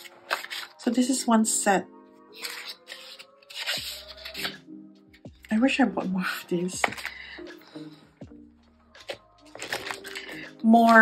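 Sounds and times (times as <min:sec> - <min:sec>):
paper and plastic packaging rustling: 0:00.0 - 0:01.0, 0:02.4 - 0:04.6, 0:06.3 - 0:08.0, 0:08.9 - 0:11.0
background music with held notes: 0:00.0 - 0:11.0.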